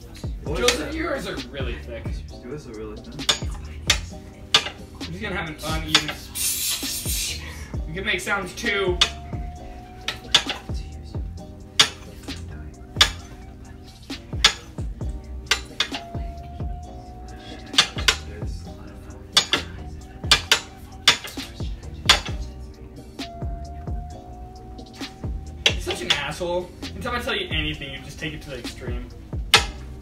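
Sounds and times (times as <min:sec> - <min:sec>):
soft background music: 0:00.0 - 0:30.0.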